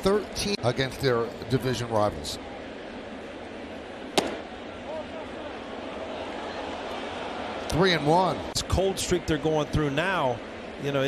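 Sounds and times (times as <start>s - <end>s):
stadium crowd murmur: 0.0s - 11.0s
baseball smacking into mitt: 4.2s - 4.4s.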